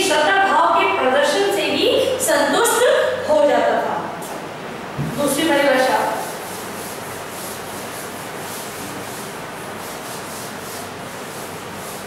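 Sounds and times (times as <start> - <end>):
duster wiping chalkboard: 5.0 - 12.0.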